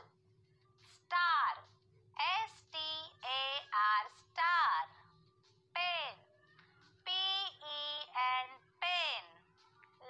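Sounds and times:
high child-like voice chanting: 5.9s - 9.8s.

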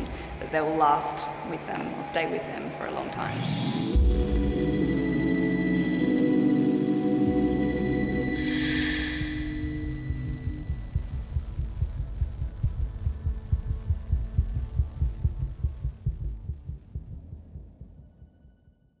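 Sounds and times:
hum: 0.0s - 18.9s
low rapid throbbing pulse: 0.1s - 18.7s
sustained music tones and shimmer: 1.5s - 11.3s.

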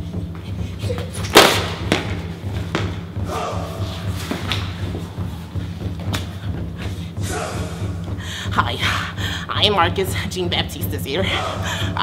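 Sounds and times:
body thud on concrete floor: 1.2s - 3.1s
steady low background sound: 1.6s - 12.0s.

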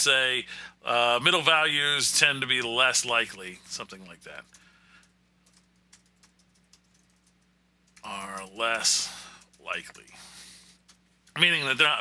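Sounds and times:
low steady hum: 0.0s - 12.0s
keyboard keystrokes: 5.4s - 8.8s.

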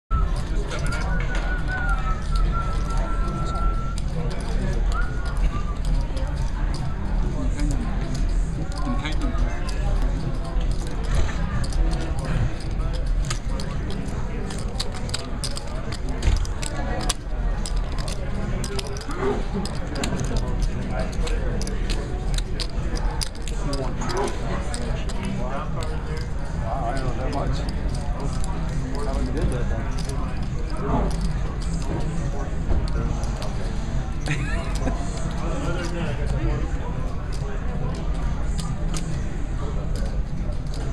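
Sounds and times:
background chatter: 0.1s - 40.9s
poker chips clicking: 0.2s - 40.9s.

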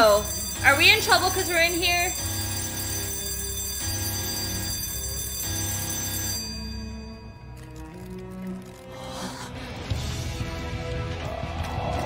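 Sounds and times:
sustained high ringing tones: 0.0s - 8.7s.

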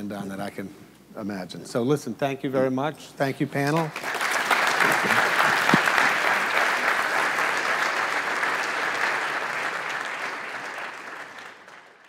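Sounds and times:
audience applause: 3.7s - 12.0s.

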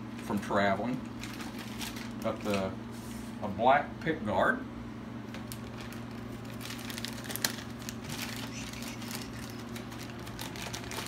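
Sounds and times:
steady low hum: 0.0s - 11.0s
packaging crinkling and rustling: 0.2s - 2.7s, 5.3s - 11.0s.

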